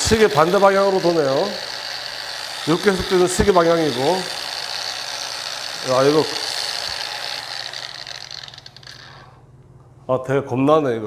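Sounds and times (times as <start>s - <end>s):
angle grinder spinning down: 0.0s - 9.4s.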